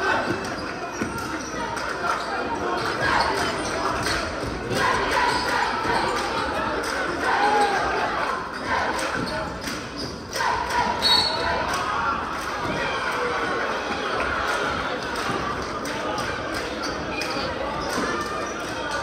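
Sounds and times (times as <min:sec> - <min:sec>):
murmur of crowd voices: 0:00.0 - 0:19.0.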